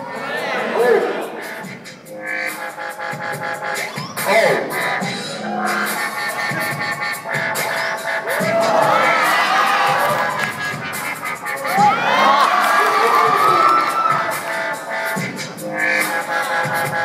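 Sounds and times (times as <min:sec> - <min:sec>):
electronic dance music: 0:00.0 - 0:17.0
crowd cheering and whooping: 0:08.2 - 0:14.8.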